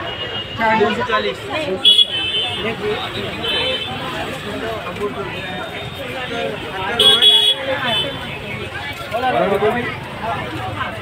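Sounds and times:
people talking: 0.0 - 11.0
street noise: 0.0 - 11.0.

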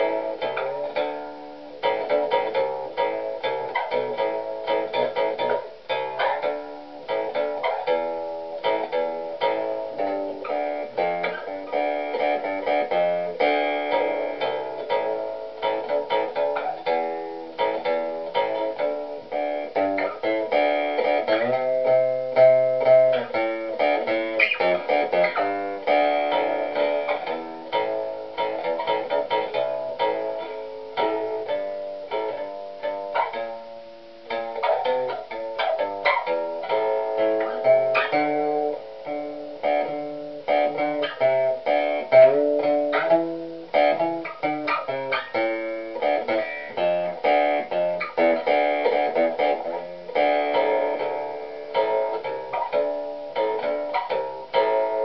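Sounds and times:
plucked bass guitar notes: 0.0 - 55.0.

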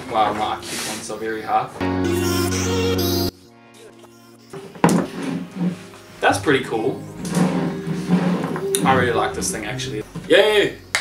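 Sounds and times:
faint background music: 0.0 - 2.2, 2.8 - 11.0.

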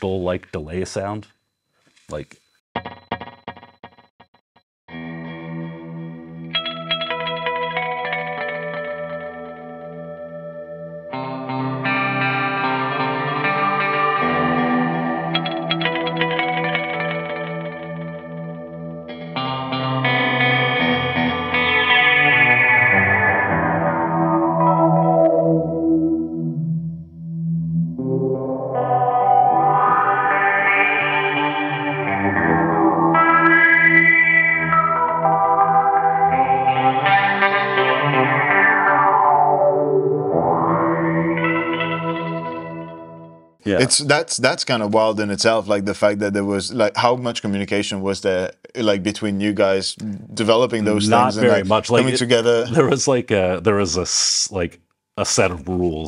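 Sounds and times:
electric guitar chords with delay: 4.9 - 43.8, 50.7 - 53.0.

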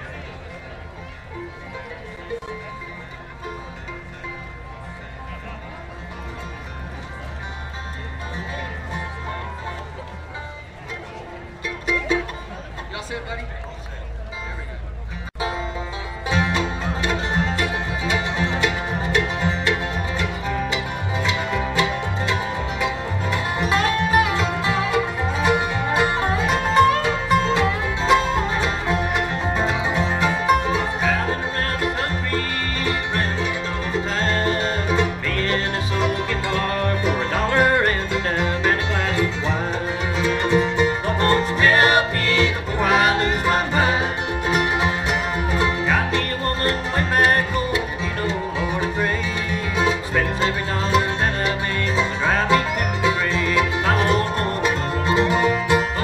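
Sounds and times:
banjo: 0.0 - 56.0
dobro: 0.0 - 56.0
guitar: 0.0 - 56.0
mandolin: 0.0 - 56.0
string bass line: 0.0 - 56.0.

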